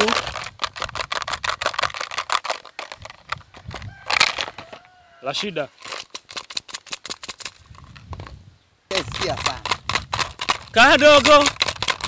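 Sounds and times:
rapid rattling clicks: 0.0 - 4.5, 8.9 - 12.0.

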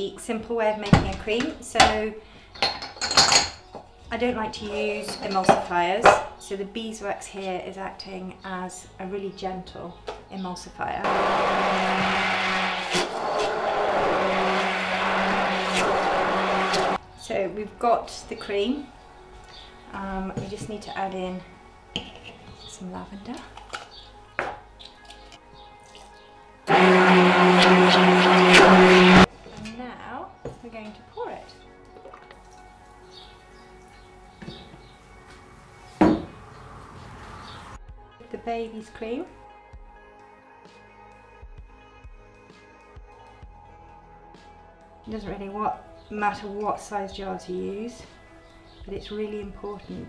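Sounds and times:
faint background music: 0.0 - 11.1, 17.0 - 50.0
metal utensil scraping in a pot: 22.0 - 22.6.

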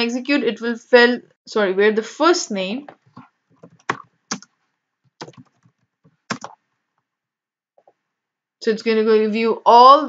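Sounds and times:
typing on keyboard: 3.6 - 4.5, 5.2 - 6.6.

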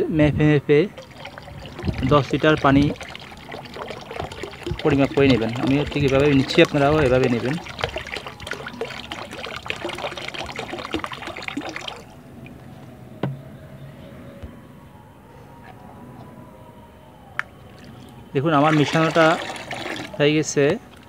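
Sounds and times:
water pouring into a plastic basin: 0.9 - 12.2, 17.7 - 21.0.

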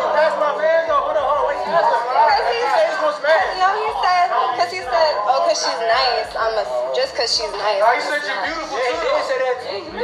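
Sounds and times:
people talking over each other: 0.0 - 10.0.

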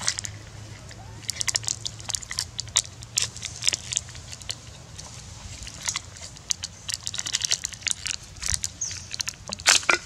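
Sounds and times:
plastic wrapper crinkling: 1.2 - 10.0.

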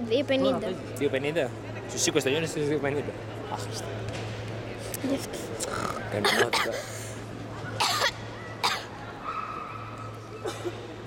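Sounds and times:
steady low hum: 2.5 - 9.0
person coughing: 5.7 - 7.0, 7.8 - 8.9.

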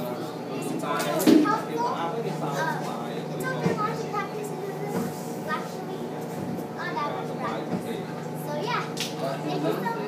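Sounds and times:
child speaking and chattering: 0.5 - 10.0.

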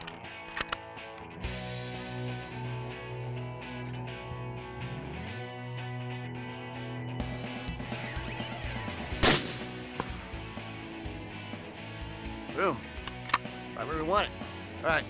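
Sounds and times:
background music: 0.0 - 15.0
rifle shot: 9.2 - 10.2.

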